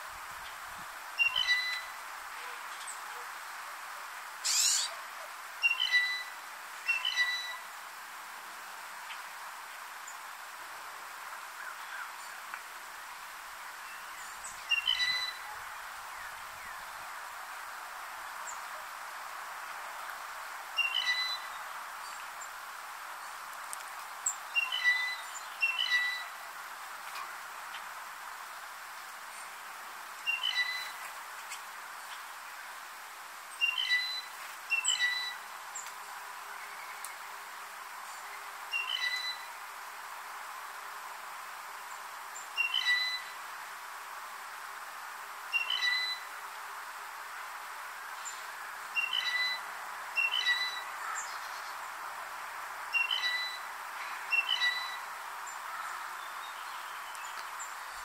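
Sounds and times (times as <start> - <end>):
steady background hiss: 0.0 - 58.0
blue jay creaky squeaking call: 1.2 - 1.9, 4.4 - 4.9, 5.6 - 6.3, 6.9 - 7.6, 14.7 - 15.4, 20.8 - 21.5, 24.6 - 26.3, 30.3 - 31.0, 33.6 - 35.4, 38.8 - 39.5, 42.6 - 43.3, 45.6 - 46.2, 49.0 - 49.6, 50.2 - 50.8, 53.0 - 53.7, 54.3 - 55.0.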